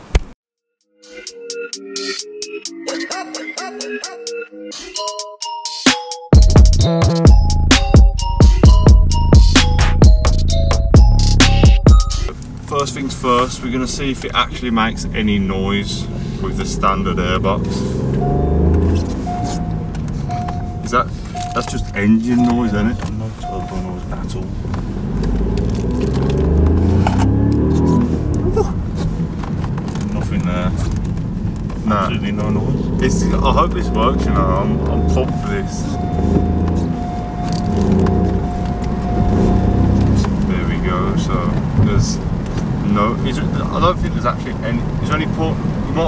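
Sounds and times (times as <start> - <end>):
person speaking: 12.3 - 19.8, 20.7 - 24.6, 31.8 - 37.0
car engine accelerating: 12.3 - 46.0
steady high tone: 18.1 - 24.0
short beeps: 18.2 - 24.0, 33.8 - 39.7.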